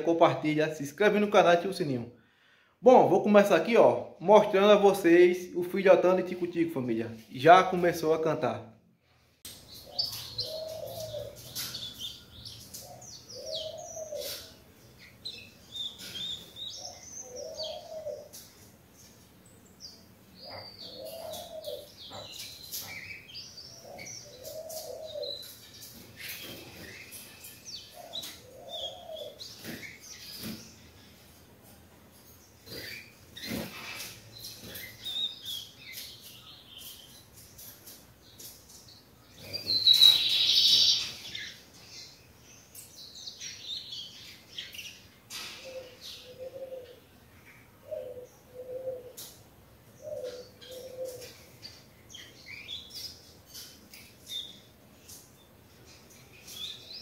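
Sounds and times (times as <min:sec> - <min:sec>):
sparrow high chirps: 0:09.5 - 0:31.3, 0:32.2 - 0:49.3, 0:49.9 - 0:57.0
low cooing call: 0:17.2 - 0:18.3, 0:45.6 - 0:47.0, 0:47.8 - 0:49.2, 0:50.0 - 0:51.4.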